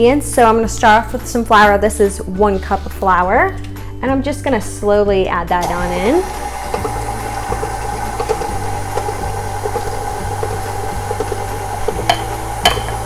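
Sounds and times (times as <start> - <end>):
stand mixer motor whining: 5.6 - 13.0.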